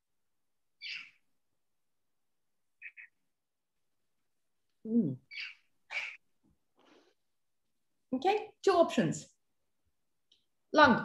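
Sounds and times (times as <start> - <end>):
woman humming: 4.8 - 5.2.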